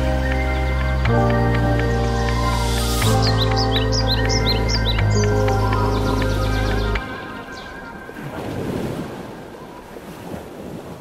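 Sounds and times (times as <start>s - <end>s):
music with heavy bass: 0.0s - 7.0s
sea surf washing ashore: 7.1s - 11.0s.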